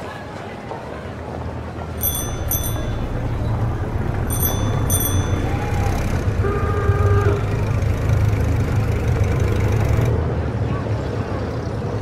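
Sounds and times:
low rumble of traffic: 0.0s - 12.0s
bicycle bell ringing: 2.0s - 6.6s
car horn: 5.0s - 8.3s.

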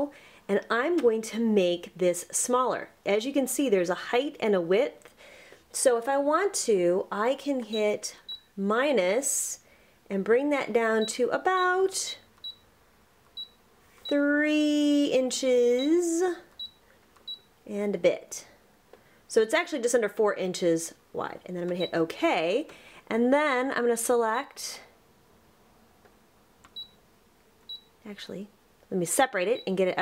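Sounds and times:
touchscreen beeps: 12.0s - 12.6s, 13.4s - 14.2s, 16.6s - 17.5s, 26.8s - 27.0s, 27.7s - 27.9s, 29.6s - 29.8s.

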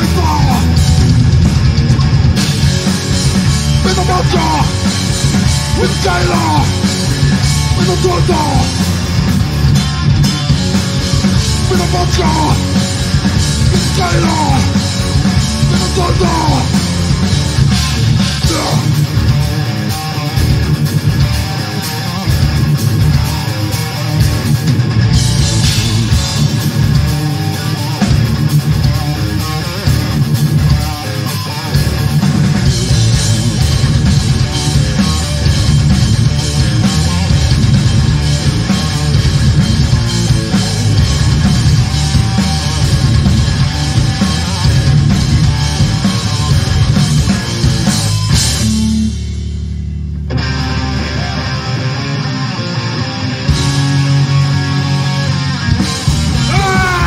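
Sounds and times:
live punk band playing: 0.0s - 57.0s.

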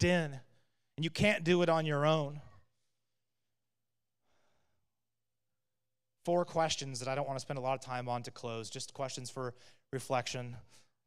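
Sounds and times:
faint breath into microphone: 4.2s - 4.9s, 9.5s - 9.9s.

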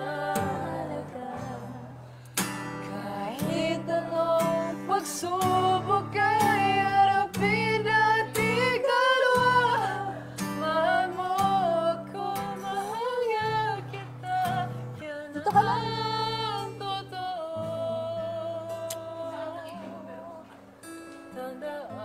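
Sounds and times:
person singing: 0.0s - 2.2s, 2.8s - 20.7s
acoustic guitar strumming: 0.0s - 22.0s.

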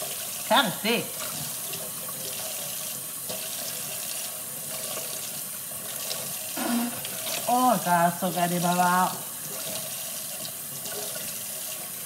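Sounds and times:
faucet running into sink: 0.0s - 12.0s.

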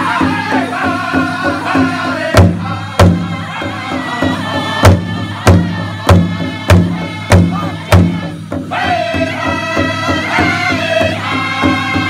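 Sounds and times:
big hide drum beats: 0.0s - 12.0s.

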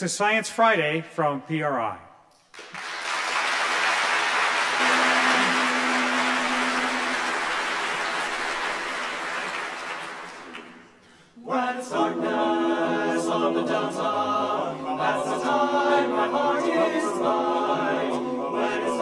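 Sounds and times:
audience applause: 2.6s - 10.9s
men's choir singing in harmony: 4.8s - 8.8s, 11.4s - 19.0s.

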